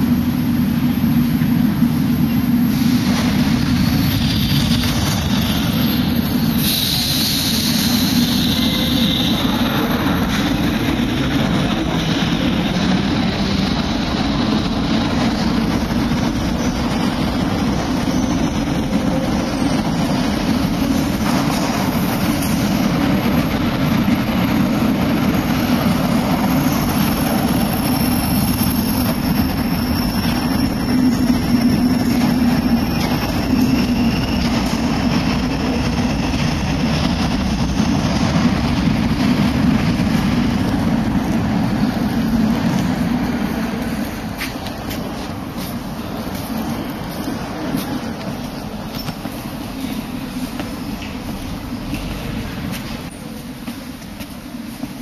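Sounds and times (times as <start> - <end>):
metro train rumbling on rails: 0.0 - 55.0.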